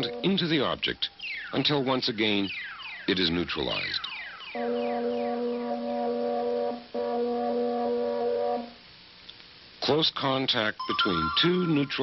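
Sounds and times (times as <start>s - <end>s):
electronic chord held: 0.0s - 0.8s, 4.5s - 8.8s, 10.8s - 12.0s.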